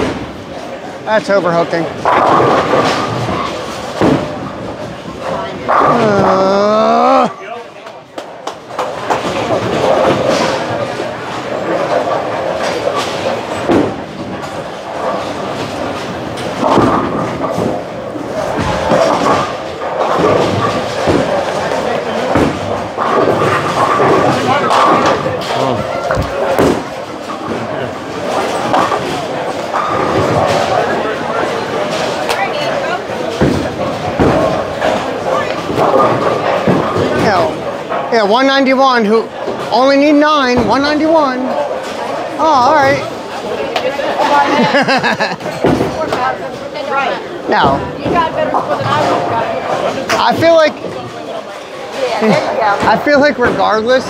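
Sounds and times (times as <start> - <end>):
murmur of voices: 0.0 - 54.0
bowling balls thudding on lanes: 1.8 - 6.4, 8.1 - 38.1, 45.4 - 52.0
bowling pins crashing: 1.9 - 6.4, 8.7 - 38.1, 45.5 - 46.5.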